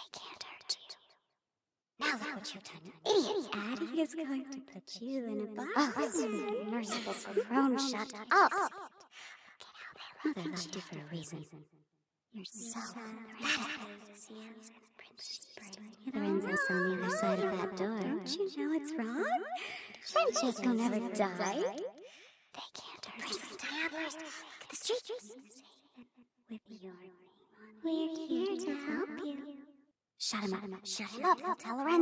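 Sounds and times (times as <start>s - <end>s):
ghostly whispered voice: 15.0s - 19.0s.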